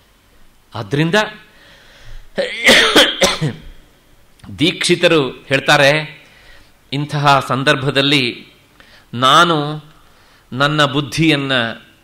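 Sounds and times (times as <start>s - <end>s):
man coughing and clearing throat: 2.4s - 3.8s.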